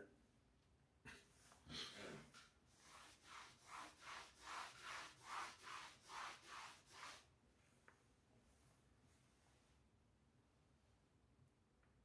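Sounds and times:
eraser swishing on blackboard: 2.7 - 7.3.

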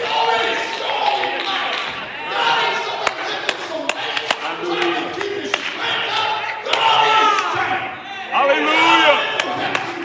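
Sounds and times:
handclaps: 3.1 - 5.8, 9.4 - 10.0.

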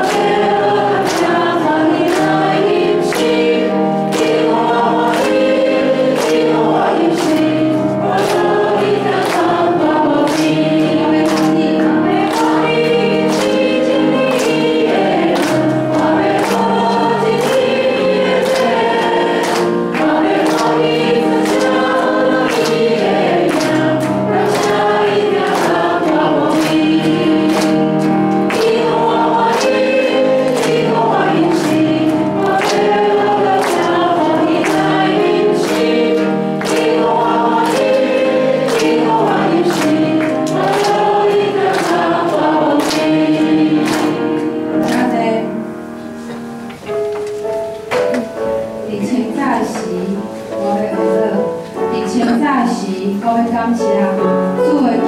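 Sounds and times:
congregation singing a praise song: 0.0 - 46.4
accompaniment with steady beat: 0.0 - 48.7.

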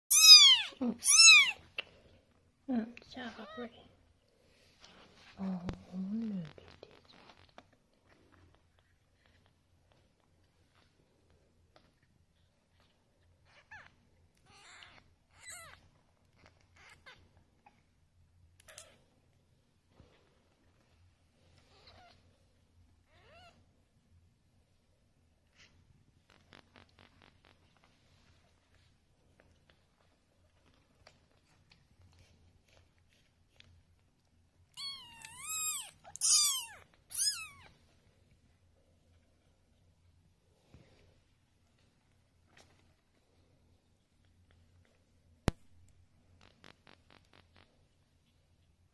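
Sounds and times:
kittens mewing: 0.1 - 1.6, 34.8 - 37.7.

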